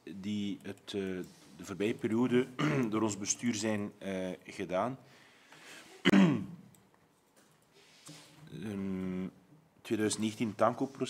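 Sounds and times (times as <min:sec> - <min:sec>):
person clearing throat: 0:02.6 - 0:03.0, 0:06.0 - 0:06.7.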